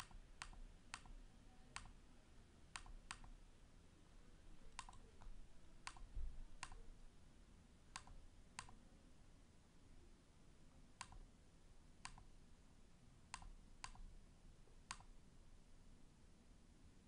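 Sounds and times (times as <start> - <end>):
computer mouse clicks: 0.0 - 2.0, 2.7 - 3.4, 4.7 - 6.9, 7.9 - 8.8, 11.0 - 11.3, 12.0 - 12.3, 13.3 - 14.1, 14.8 - 15.1.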